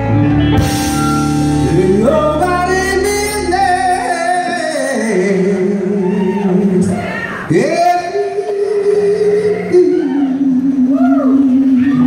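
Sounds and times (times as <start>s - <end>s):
blues rock band holding a wavering note: 0.0s - 7.3s.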